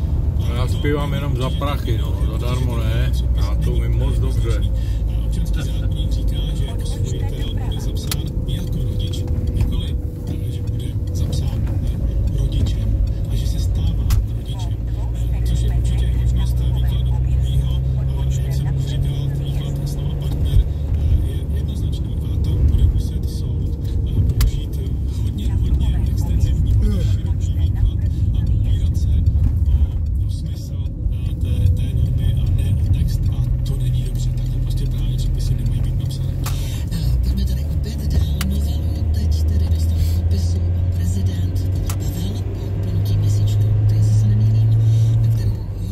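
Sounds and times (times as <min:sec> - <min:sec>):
car engine and tyre drone: 0:00.0 - 0:45.9.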